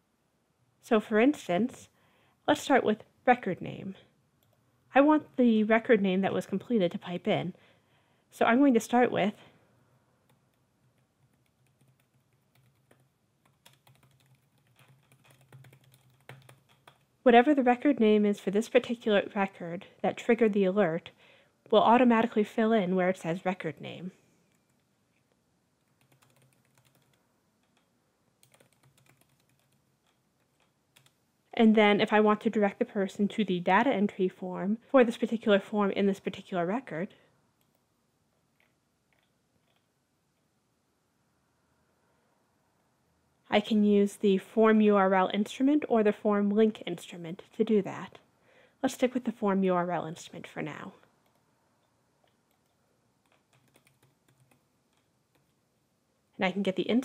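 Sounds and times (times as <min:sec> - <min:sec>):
faint keyboard typing: 0:10.2 - 0:17.2, 0:23.6 - 0:31.2, 0:37.6 - 0:37.9, 0:38.5 - 0:40.5, 0:50.9 - 0:55.6.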